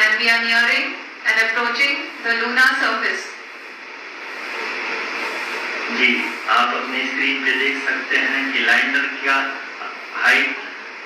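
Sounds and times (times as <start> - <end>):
steady noise hiss: 0.0 - 11.0.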